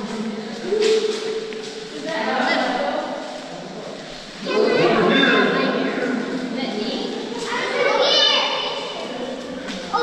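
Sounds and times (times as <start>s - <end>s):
children calling out echoing: 7.4s - 10.0s.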